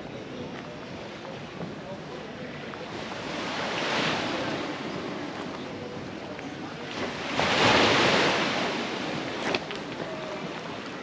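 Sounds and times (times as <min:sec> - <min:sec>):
waves washing onto pebbles: 0:07.0 - 0:10.4.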